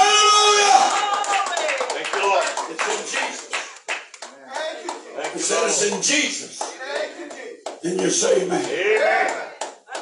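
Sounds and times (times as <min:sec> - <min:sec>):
congregation clapping: 0:00.0 - 0:10.0.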